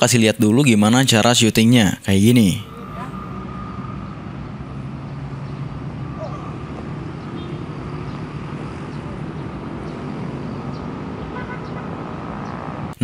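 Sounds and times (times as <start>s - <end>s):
low rumble of distant traffic: 0.0s - 13.0s.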